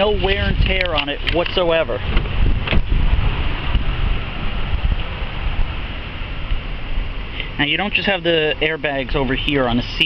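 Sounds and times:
wind buffeting microphone: 0:00.0 - 0:08.0.

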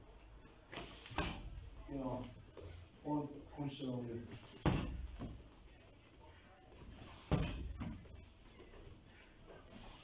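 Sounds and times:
kick thudding on boxing glove: 0:01.1 - 0:01.6, 0:04.6 - 0:05.4, 0:07.3 - 0:08.0.

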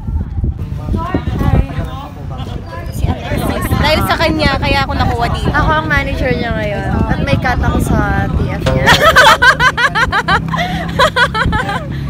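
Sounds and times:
people talking: 0:00.9 - 0:11.8
low thumps: 0:08.5 - 0:10.1.

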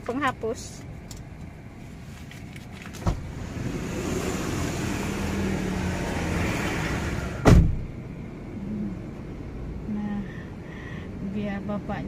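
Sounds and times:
vehicle passing close by: 0:03.2 - 0:07.9.

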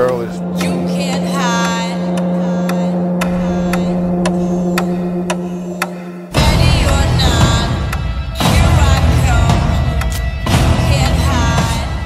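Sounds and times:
sharp ticks: 0:00.0 - 0:06.1
low electronic drone: 0:00.0 - 0:12.0.

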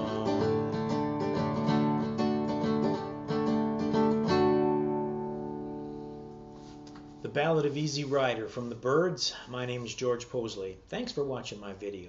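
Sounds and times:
nylon-string guitar chords: 0:00.0 - 0:07.2.

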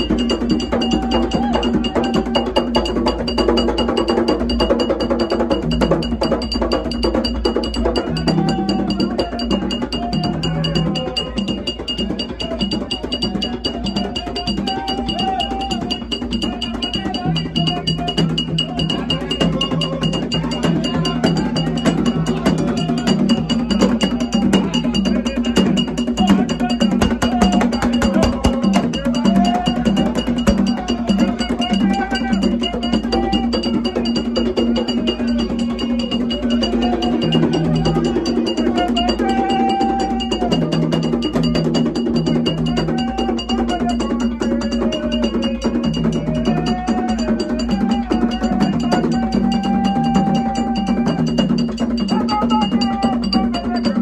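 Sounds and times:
hand drums playing fast rhythm: 0:00.0 - 0:54.0
metal bell ringing pattern: 0:00.0 - 0:54.0
long held tones: 0:06.1 - 0:54.0.

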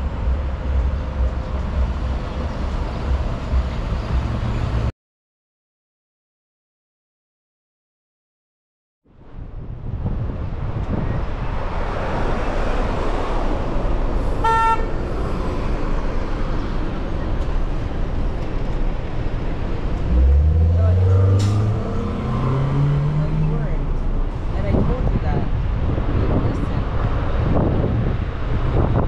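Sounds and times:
street traffic: 0:00.0 - 0:04.9, 0:09.1 - 0:29.0
wind noise: 0:09.2 - 0:20.6, 0:23.8 - 0:29.0
short car horn toot: 0:14.4 - 0:14.9
engine revving up: 0:20.0 - 0:23.9.

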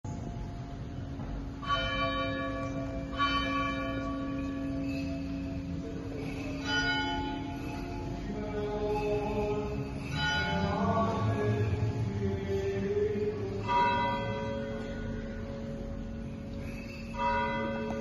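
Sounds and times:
low hum: 0:00.0 - 0:18.0
church bell tolling: 0:01.4 - 0:18.0.

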